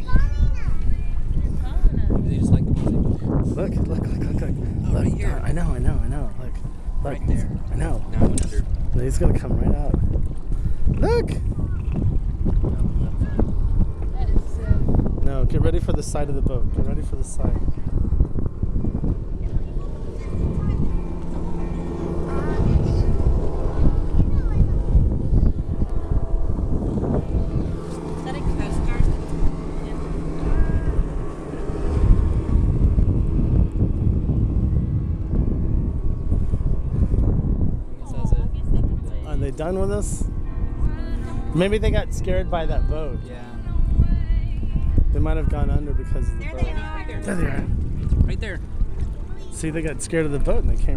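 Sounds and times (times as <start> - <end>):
boat engine drone: 0.0 - 50.9
water moving past hull: 0.0 - 50.9
wind buffeting microphone: 0.0 - 50.9.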